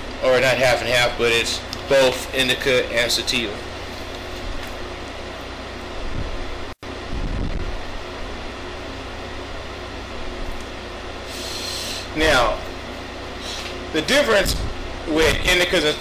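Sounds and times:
ventilation fan hum: 0.0s - 16.0s
man exhaling smoke: 11.2s - 12.2s, 13.3s - 13.8s.

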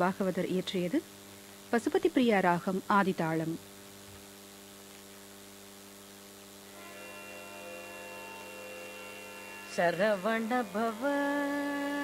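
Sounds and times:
woman singing: 9.7s - 12.0s.

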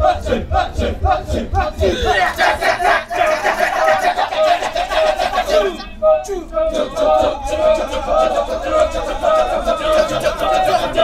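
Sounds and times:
men chanting rhythmically: 0.0s - 11.0s.

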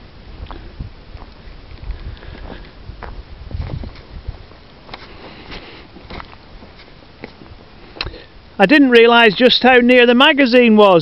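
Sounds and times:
wind rumble on microphone: 0.0s - 7.8s
grass rustling: 0.0s - 11.0s
footsteps through rough grass: 0.4s - 8.1s.

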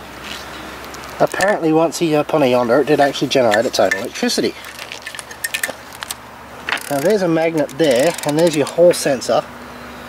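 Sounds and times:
metal parts clicking and clinking: 3.5s - 9.0s.

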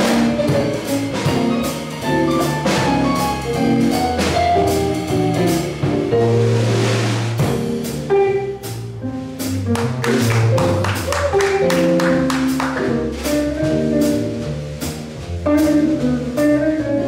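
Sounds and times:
jazz quartet playing: 0.0s - 17.0s.

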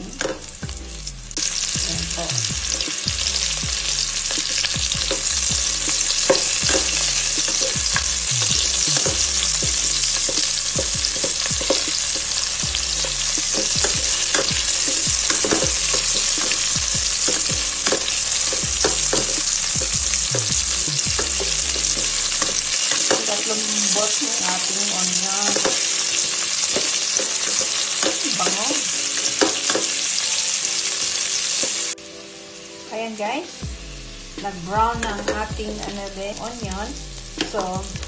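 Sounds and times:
onion and garlic sizzling in oil: 0.0s - 38.0s.

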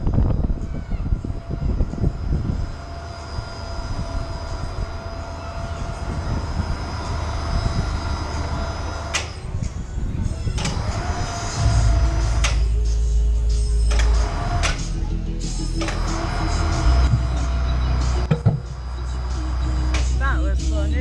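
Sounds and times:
amusement ride rumble: 0.0s - 21.0s
background music: 9.8s - 21.0s.

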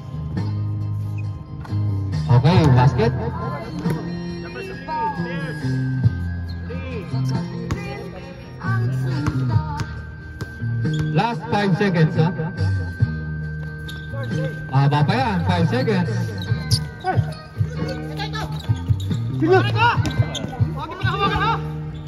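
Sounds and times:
music with bass line: 8.6s - 22.0s.

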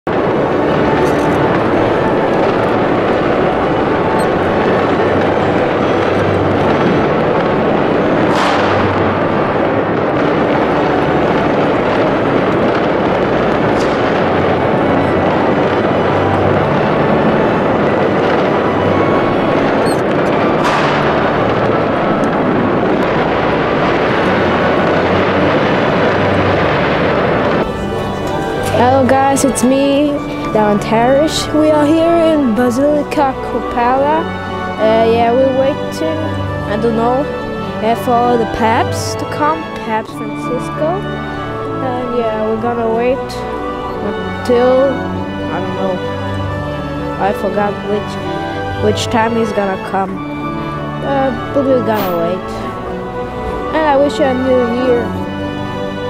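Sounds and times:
fireworks going off: 0.1s - 32.4s.

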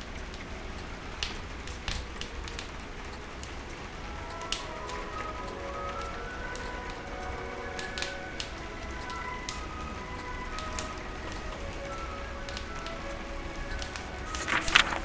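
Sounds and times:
rain pattering on a window: 0.0s - 15.0s
soft music: 0.0s - 15.0s
wood fire crackling and popping: 1.1s - 7.0s.

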